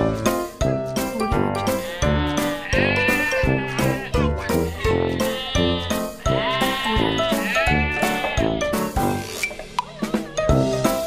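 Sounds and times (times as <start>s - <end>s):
background music with steady beat: 0.0s - 11.0s
goat bleating: 1.6s - 8.6s.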